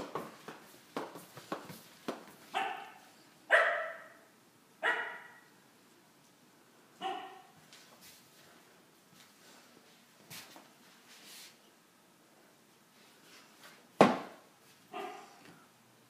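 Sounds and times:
dog barking: 2.5 - 5.5, 7.0 - 7.6, 14.9 - 15.4.

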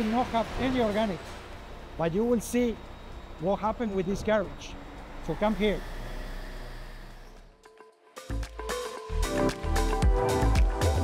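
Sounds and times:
machinery rumble and hiss: 0.0 - 6.7.

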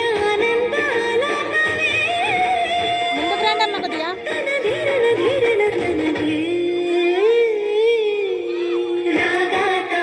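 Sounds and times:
steady musical accompaniment: 0.0 - 10.0.

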